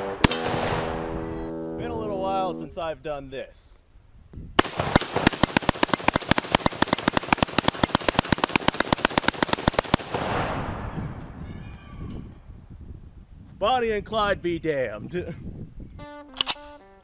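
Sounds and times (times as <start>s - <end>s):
gunshot echoing: 0.0s - 1.3s, 4.6s - 11.2s
rifle firing continuous burst: 4.6s - 10.4s.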